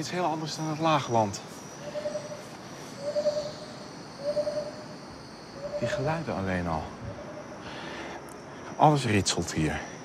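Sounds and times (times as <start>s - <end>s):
high-pitched insect drone: 0.0s - 10.0s.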